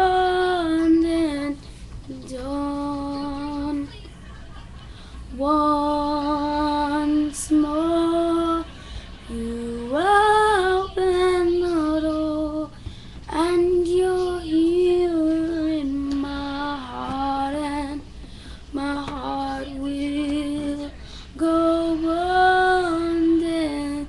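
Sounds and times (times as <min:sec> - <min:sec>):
girl singing: 0:00.0 - 0:04.1, 0:05.3 - 0:08.7, 0:09.3 - 0:24.0.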